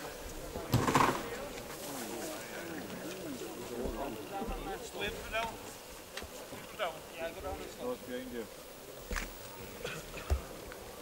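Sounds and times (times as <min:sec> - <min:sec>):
low voices talking: 0:00.0 - 0:11.0.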